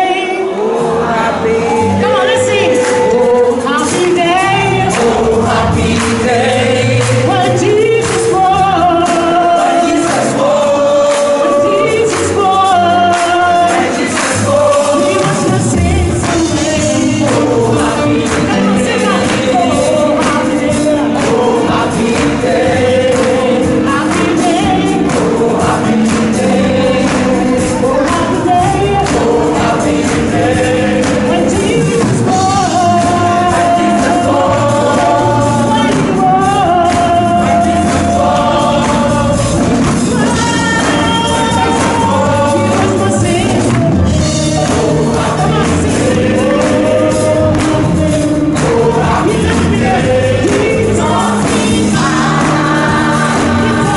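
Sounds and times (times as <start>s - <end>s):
band with percussion: 0.0s - 53.9s
gospel choir singing over beat: 0.0s - 53.9s.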